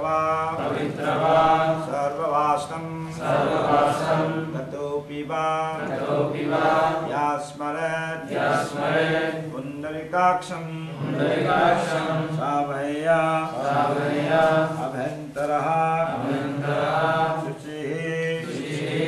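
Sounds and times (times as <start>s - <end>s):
rhythmic mantra chanting: 0.0s - 19.0s.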